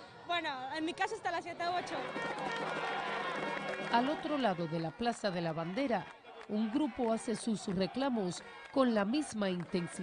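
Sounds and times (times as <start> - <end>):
crowd chanting in unison: 1.7 - 10.0.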